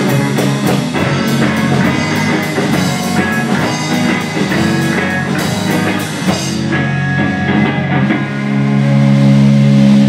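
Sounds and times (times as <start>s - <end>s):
electric guitars ringing chord: 0.0s - 10.0s.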